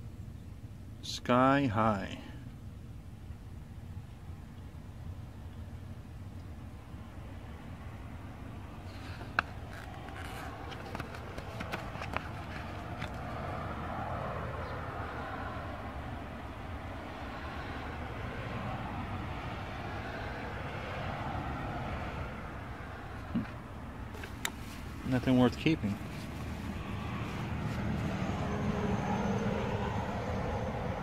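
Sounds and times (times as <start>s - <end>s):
outdoor rumble: 2.8s - 31.0s.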